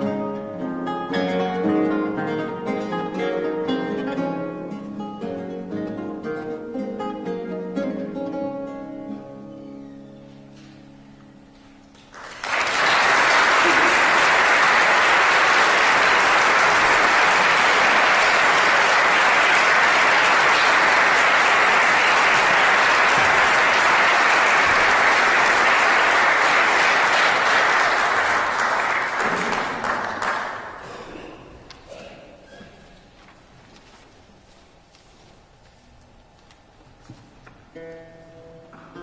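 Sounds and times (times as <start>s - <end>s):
audience applauding: 12.0s - 31.0s.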